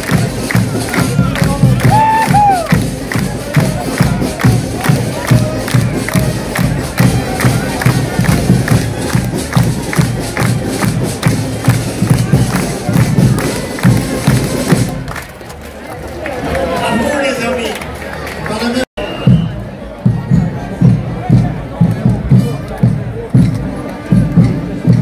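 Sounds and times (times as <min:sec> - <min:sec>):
music: 0:00.0 - 0:15.6, 0:19.0 - 0:25.0
crowd clapping in rhythm: 0:00.0 - 0:18.9, 0:21.8 - 0:25.0
crowd cheering: 0:00.0 - 0:25.0
shout: 0:01.7 - 0:02.8.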